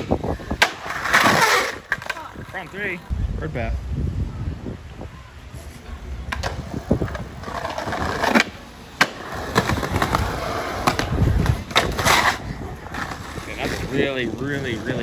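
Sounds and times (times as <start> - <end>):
skateboard landing crack: 0.0 - 2.2, 6.3 - 12.4
skateboard wheels rolling on pavement: 0.0 - 3.6, 4.6 - 15.0.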